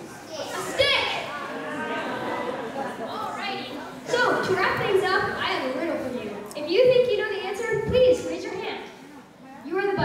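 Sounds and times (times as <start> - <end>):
child speaking: 0.3 - 1.3.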